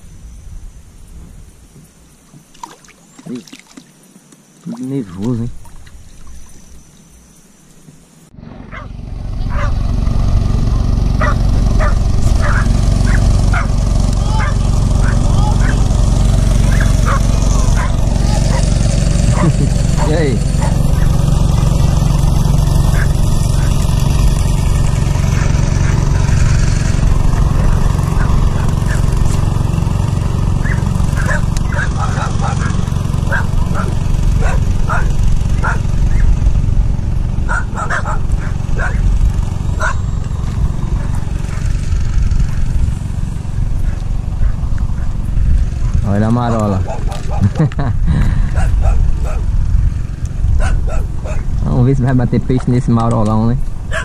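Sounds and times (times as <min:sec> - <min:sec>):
loud low rumble: 0:08.3 - 0:47.0
dogs barking: 0:08.6 - 0:09.8, 0:11.2 - 0:21.4, 0:22.6 - 0:24.0, 0:25.2 - 0:26.3, 0:27.5 - 0:29.4, 0:30.6 - 0:36.4, 0:37.4 - 0:40.1, 0:40.9 - 0:41.8, 0:43.7 - 0:45.2, 0:45.9 - 0:47.6, 0:48.4 - 0:49.6, 0:50.6 - 0:51.6.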